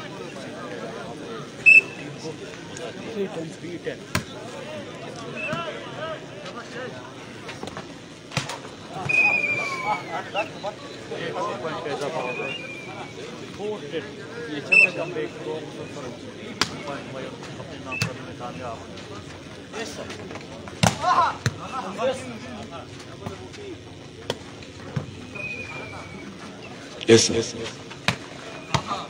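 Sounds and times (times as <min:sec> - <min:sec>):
crowd hubbub: 0:00.0 - 0:29.0
volleyball hits: 0:20.7 - 0:21.7, 0:28.0 - 0:29.0
people shouting: 0:20.8 - 0:21.8.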